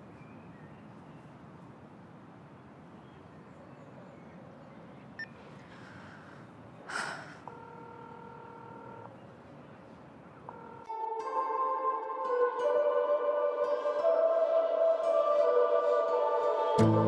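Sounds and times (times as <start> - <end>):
faint beep: 5.2 - 5.4, 7.5 - 9.2
telephone ringback tone: 7.5 - 9.1.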